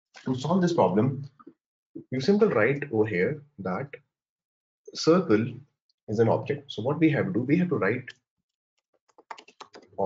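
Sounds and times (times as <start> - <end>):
typing on computer keyboard: 9.0 - 10.0.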